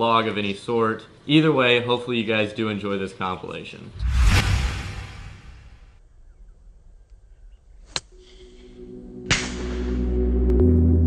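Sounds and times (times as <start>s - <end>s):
loud whoosh: 3.9s - 5.9s
music: 8.1s - 11.0s.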